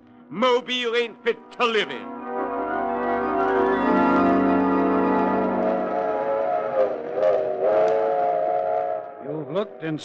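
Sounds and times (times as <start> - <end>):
organ chord: 0.9 - 7.7
steam train whistle: 5.8 - 9.4.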